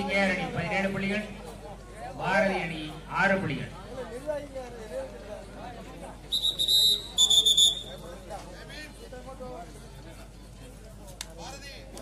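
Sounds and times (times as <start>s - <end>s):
referee's whistle blasts: 6.3s - 8.0s.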